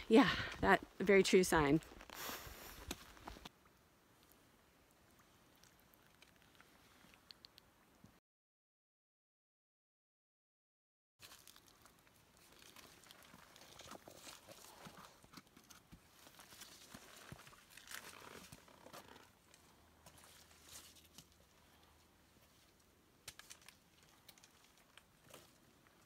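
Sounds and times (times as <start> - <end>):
clothing and pack rustling: 12.4 - 21.6.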